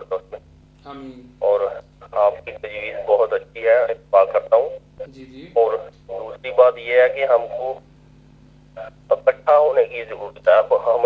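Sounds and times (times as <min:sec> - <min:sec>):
man speaking: 0:00.0 - 0:07.8, 0:08.8 - 0:11.0
low electrical hum: 0:00.0 - 0:11.0.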